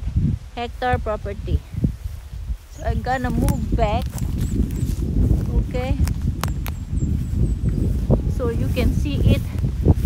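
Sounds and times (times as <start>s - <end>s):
footsteps through grass: 0.0s - 10.0s
low rumble on microphone: 0.0s - 10.0s.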